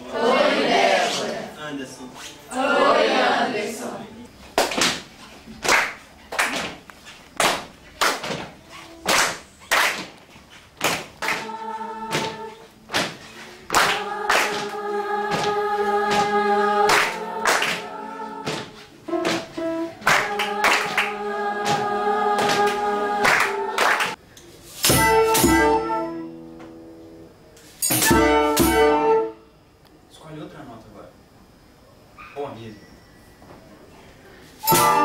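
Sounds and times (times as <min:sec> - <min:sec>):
people singing together: 0:00.0 - 0:01.6, 0:02.4 - 0:04.2, 0:10.8 - 0:24.2, 0:34.6 - 0:35.0
group clapping a beat: 0:04.5 - 0:24.2, 0:24.8 - 0:25.8.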